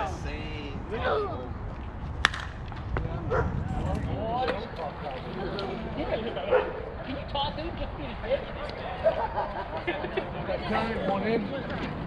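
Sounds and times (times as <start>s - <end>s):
voices and laughter: 3.3s - 12.0s.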